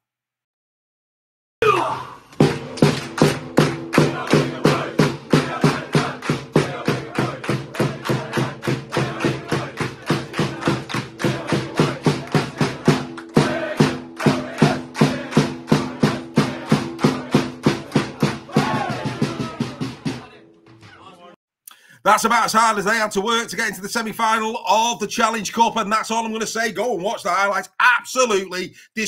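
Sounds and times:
group cheering: 1.6s - 21.4s
hand drum beaten with stick: 2.4s - 21.0s
men clapping: 2.5s - 19.8s
men chanting held note: 4.0s - 21.4s.

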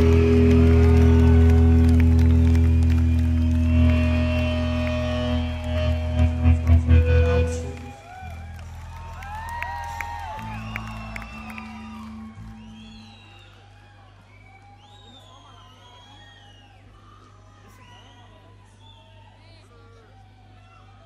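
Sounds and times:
electric guitar chord: 0.0s - 7.9s
crowd cheering and whistling: 0.0s - 21.0s.

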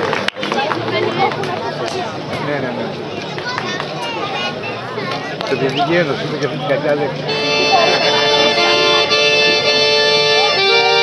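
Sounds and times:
chatter of voices: 0.0s - 11.0s
accordion folk dance music: 5.7s - 11.0s.

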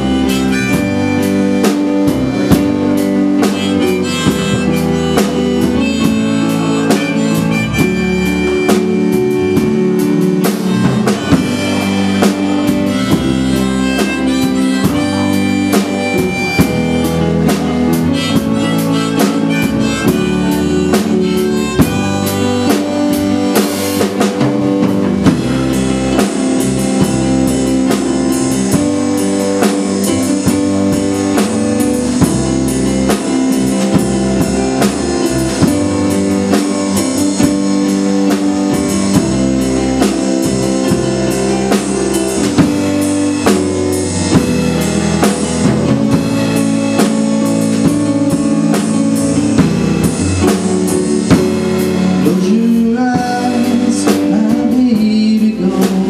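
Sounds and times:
drum kit beat: 0.0s - 56.0s
electric keyboard: 0.0s - 56.0s.

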